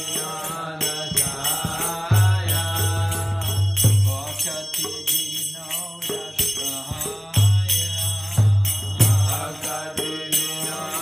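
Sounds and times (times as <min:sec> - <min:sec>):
hand cymbals jingling: 0:00.0 - 0:11.0
mantra chanting to music: 0:00.0 - 0:11.0.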